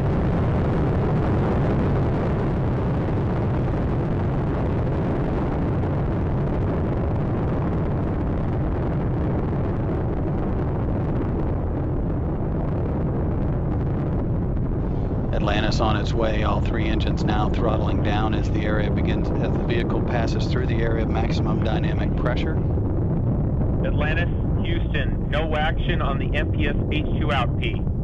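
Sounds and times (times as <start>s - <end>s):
deep rocket rumble: 0.0s - 28.0s.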